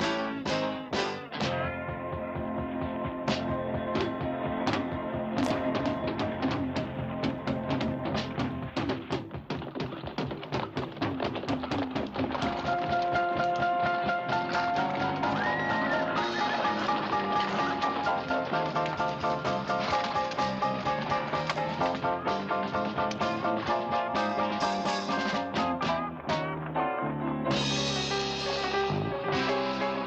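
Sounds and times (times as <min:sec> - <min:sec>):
western film score: 0:00.0 - 0:30.0
horses hoofbeats on rocky ground: 0:07.7 - 0:25.7.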